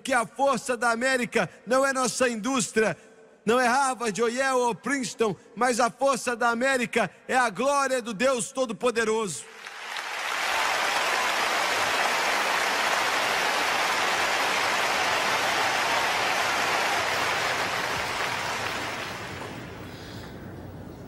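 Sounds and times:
audience applauding: 0:09.5 - 0:20.2.

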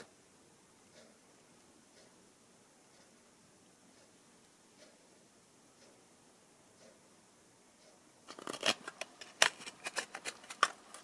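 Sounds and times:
small plastic clicks and scrapes: 0:08.2 - 0:11.0.

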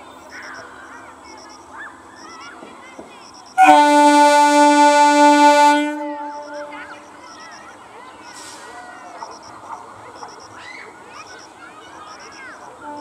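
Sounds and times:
electric train horn blast: 0:03.6 - 0:07.1.

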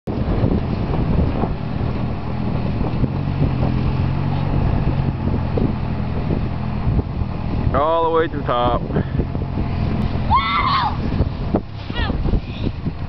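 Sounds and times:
wind buffeting microphone: 0:00.1 - 0:13.0.

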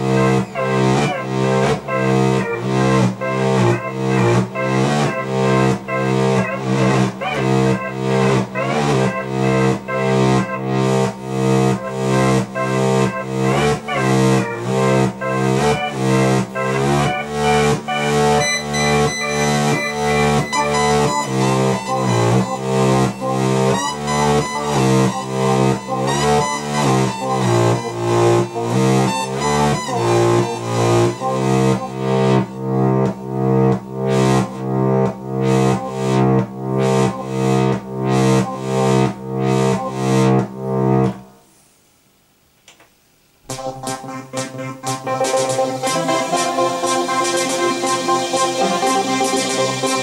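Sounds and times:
synthesizer arpeggio: 0:00.0 - 0:41.1, 0:43.5 - 0:50.0.

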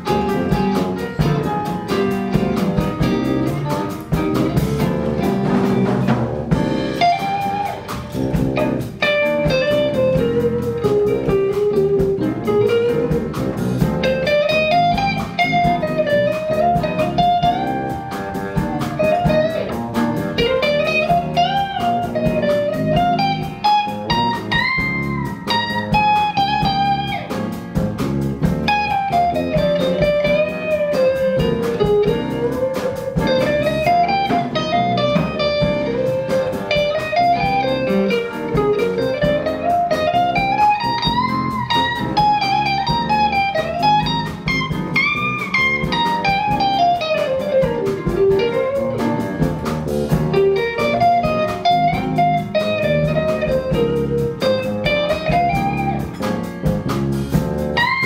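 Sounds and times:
drum kit: 0:00.0 - 0:58.0
electric bass: 0:00.0 - 0:58.0
electric guitar lead melody: 0:00.0 - 0:58.0
piano: 0:00.0 - 0:58.0.

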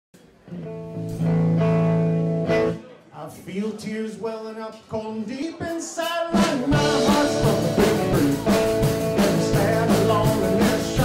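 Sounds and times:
country band guitar chords: 0:00.5 - 0:03.8, 0:04.9 - 0:11.0.

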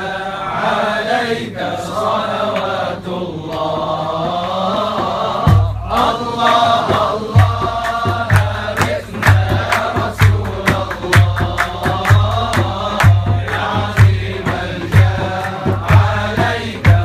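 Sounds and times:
men chanting in unison: 0:00.0 - 0:17.0
hand claps: 0:02.4 - 0:17.0
low drum beat: 0:03.8 - 0:17.0.

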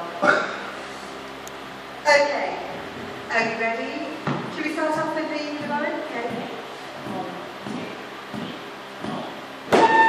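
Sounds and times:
tin whistle: 0:09.7 - 0:10.0.

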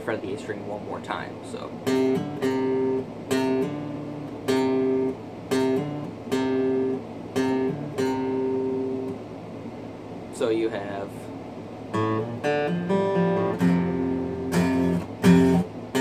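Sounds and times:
acoustic guitar riff: 0:01.6 - 0:09.2, 0:11.9 - 0:16.0.

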